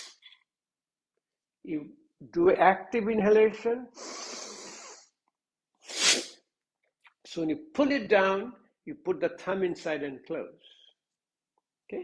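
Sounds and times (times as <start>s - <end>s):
man exhaling sharply through nose: 5.8s - 6.4s.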